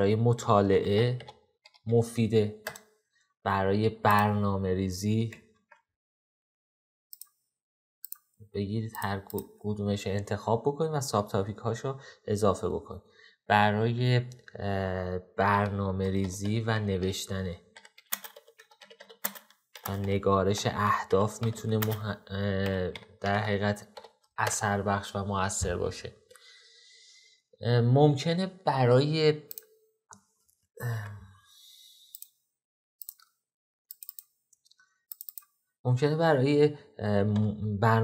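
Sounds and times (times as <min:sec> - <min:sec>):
man speaking: 0:00.0 - 0:01.3, 0:01.9 - 0:02.6, 0:03.5 - 0:05.4, 0:08.5 - 0:17.6, 0:19.9 - 0:26.2, 0:27.6 - 0:29.5, 0:35.9 - 0:38.0
keyboard keystrokes: 0:17.8 - 0:20.2, 0:21.1 - 0:24.6.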